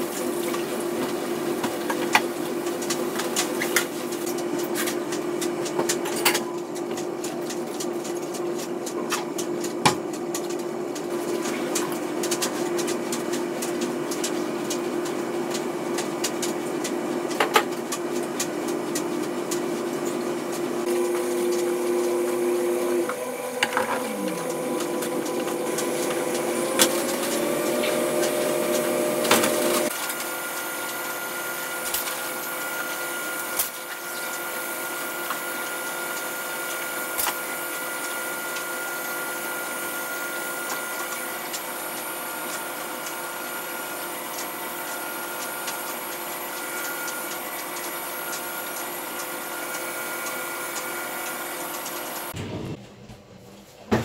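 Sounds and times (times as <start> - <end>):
steady machine-like hum: 0.0 - 53.2.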